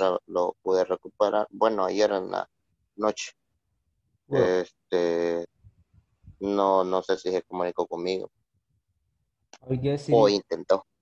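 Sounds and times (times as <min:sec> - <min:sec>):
person speaking over video call: 0:00.0 - 0:11.0.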